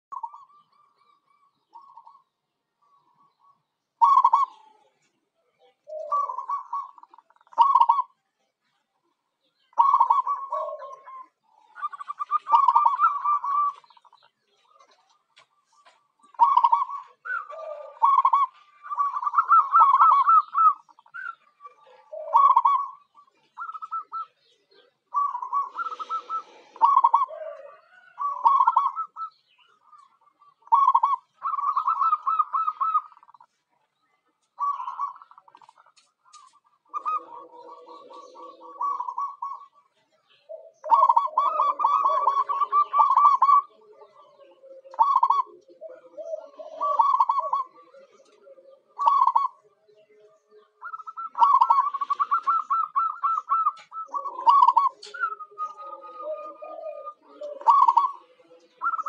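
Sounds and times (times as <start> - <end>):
dove cooing: 0.0 - 8.2, 9.5 - 33.6, 34.4 - 59.0.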